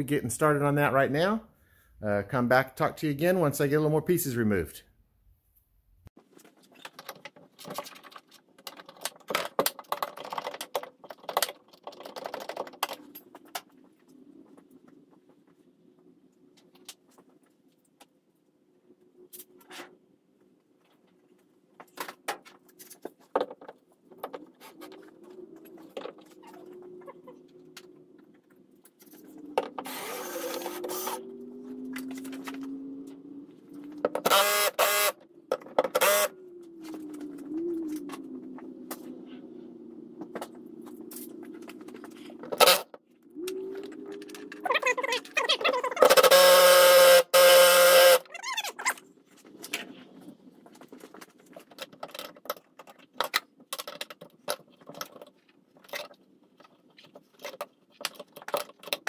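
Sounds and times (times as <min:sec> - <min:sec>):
cordless drill motor whine: 0:29.8 - 0:31.6, 0:34.3 - 0:35.2, 0:36.0 - 0:36.3, 0:46.2 - 0:48.2.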